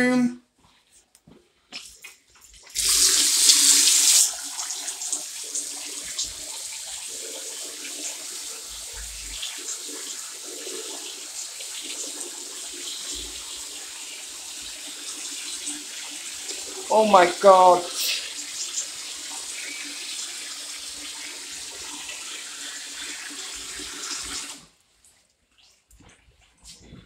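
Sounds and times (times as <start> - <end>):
tap water running into sink: 1.8 - 24.7.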